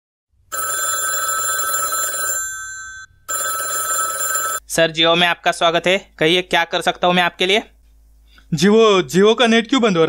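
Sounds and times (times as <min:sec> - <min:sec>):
telephone ringing: 0:00.5 - 0:04.6.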